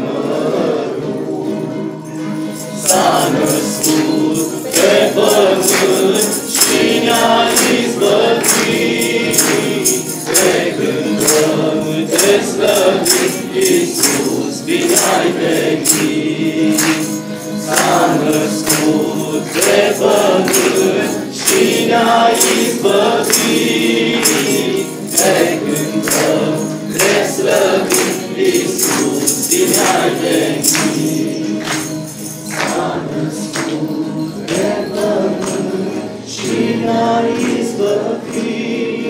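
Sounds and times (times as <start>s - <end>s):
choir singing a carol: 0.0s - 39.0s
jingling percussion: 1.2s - 39.0s.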